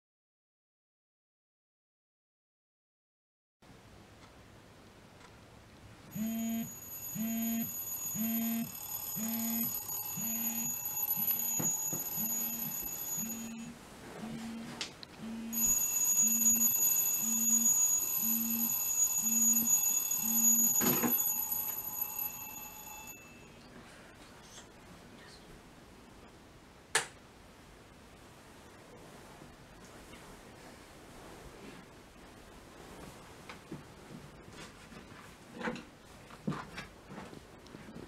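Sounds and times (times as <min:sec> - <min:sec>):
smartphone alarm beeping: 0:06.1 - 0:23.5.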